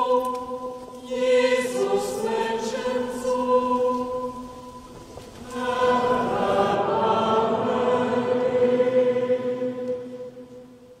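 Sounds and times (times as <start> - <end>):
choir singing long notes: 0.0 - 11.0.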